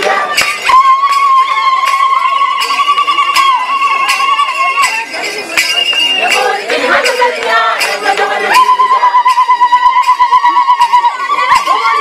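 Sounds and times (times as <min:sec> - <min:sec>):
group singing: 0:00.0 - 0:01.3, 0:05.6 - 0:09.6
sharp rhythmic clinks: 0:00.0 - 0:12.0.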